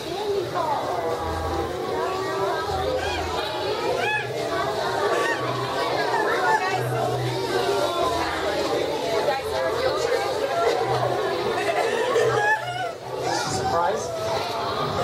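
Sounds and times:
many voices chattering: 0.0 - 15.0.

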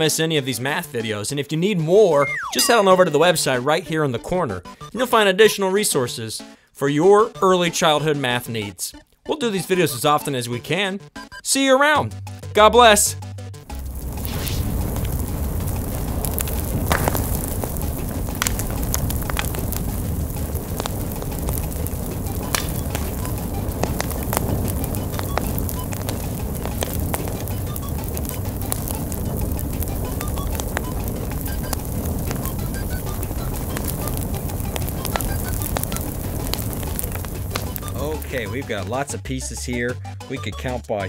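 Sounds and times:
fire crackling and popping: 0.0 - 4.0, 13.6 - 39.1.

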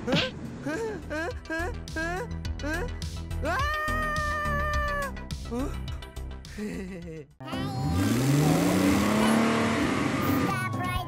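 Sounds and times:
background music: 0.0 - 11.0
high-pitched cartoonish cry: 3.4 - 5.1.

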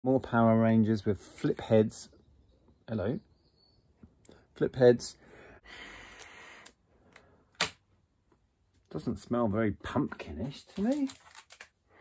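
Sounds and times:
person sniffing: 5.7 - 6.7.

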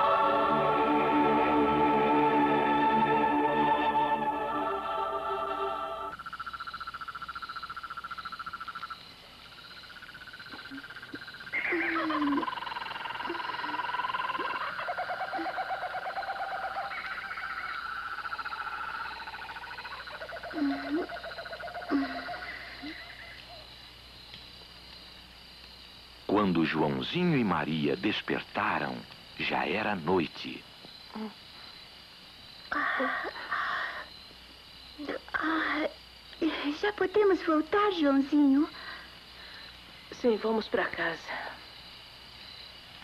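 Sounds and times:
music: 0.0 - 6.2
pulsing animal trills: 9.9 - 23.7
owl hoots: 10.5 - 23.6.

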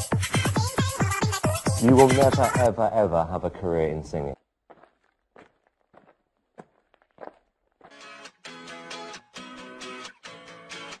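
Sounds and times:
faint footsteps: 4.3 - 8.3
guitar music: 7.9 - 11.0.

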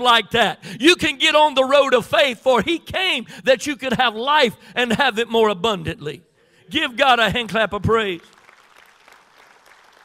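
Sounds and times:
congregation clapping: 7.8 - 10.0.

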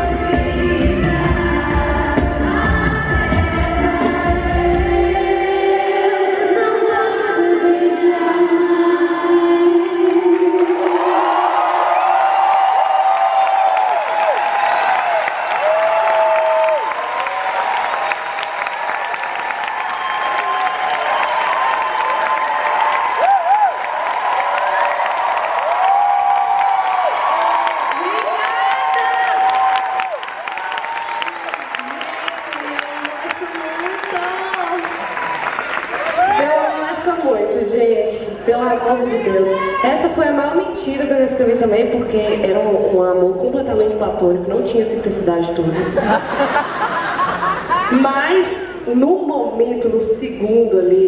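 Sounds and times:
woman singing with band: 0.0 - 11.0
audience clapping: 10.0 - 36.7
audience cheering and screaming: 10.3 - 36.9, 39.1 - 40.2.

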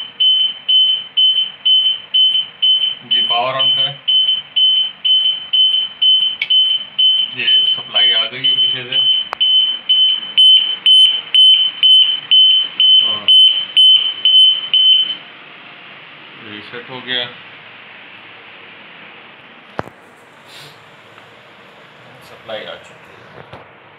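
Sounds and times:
high-pitched electronic alarm beeping: 0.0 - 15.2.

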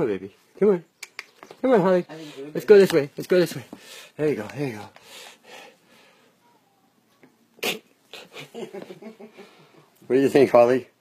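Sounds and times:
person sneezing: 7.6 - 8.5.

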